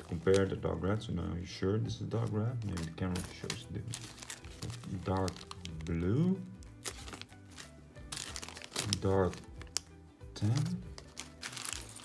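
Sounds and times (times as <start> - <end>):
faint background music: 0.0 - 12.0
plastic bag crinkling: 2.2 - 9.9, 10.9 - 12.0.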